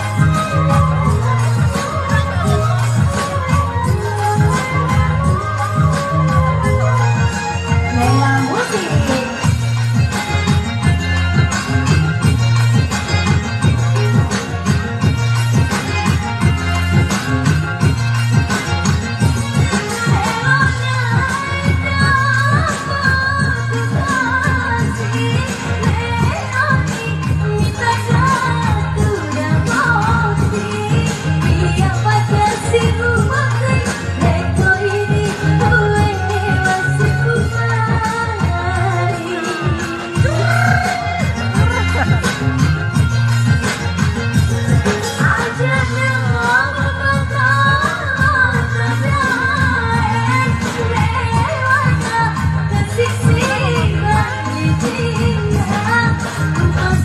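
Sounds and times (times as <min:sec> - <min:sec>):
band bass beat: 0:00.0 - 0:19.8, 0:31.4 - 0:47.7
woman singing into microphone: 0:00.0 - 0:43.6, 0:44.3 - 0:57.0.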